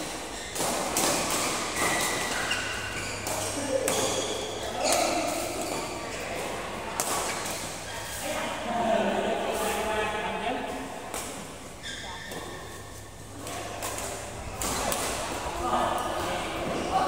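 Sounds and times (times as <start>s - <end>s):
rackets striking shuttlecocks: 0.1s - 7.8s.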